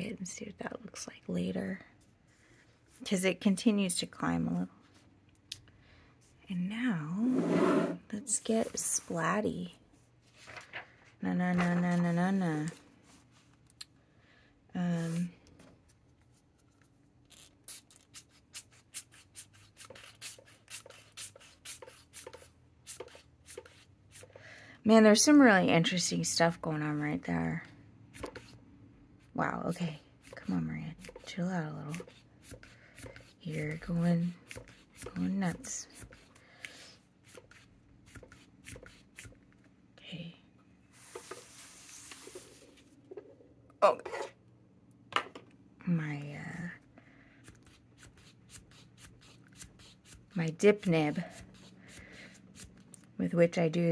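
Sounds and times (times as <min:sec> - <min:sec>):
paper rustling and sliding: 0:10.2 - 0:12.1, 0:41.0 - 0:43.0.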